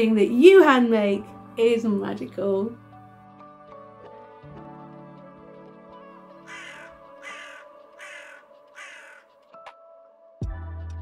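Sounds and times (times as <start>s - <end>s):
soft background music: 0.0s - 11.0s
harsh bird calls: 6.5s - 9.2s.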